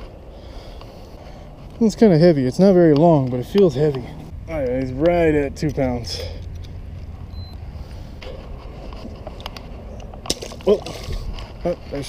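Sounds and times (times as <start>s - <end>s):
wind rumble: 0.0s - 12.0s.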